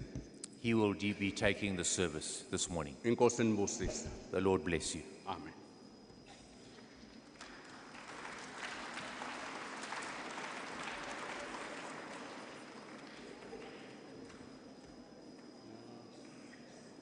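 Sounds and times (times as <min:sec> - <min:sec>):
footsteps and shuffling of group: 0:11.0 - 0:17.0.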